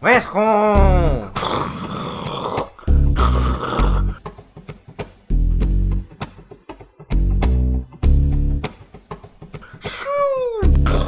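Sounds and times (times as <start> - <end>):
music with heavy bass: 0.8 - 1.4, 2.9 - 4.2, 5.3 - 6.2, 7.1 - 8.7, 10.6 - 11.0.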